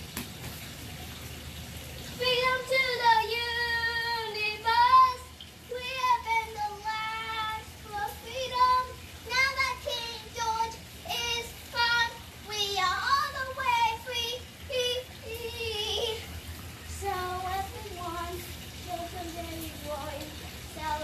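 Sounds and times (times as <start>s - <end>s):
girl singing unaccompanied: 2.1s - 21.0s.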